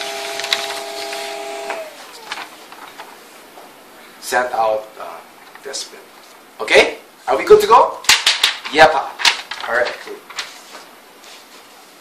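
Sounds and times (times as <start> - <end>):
laser printer humming: 0.0 - 2.4.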